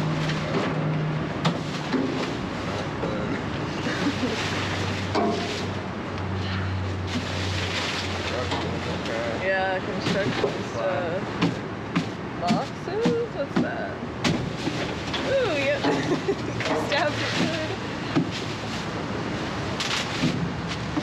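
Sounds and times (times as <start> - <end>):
trash rustling in metal dumpster: 3.9 - 5.8, 11.5 - 21.0.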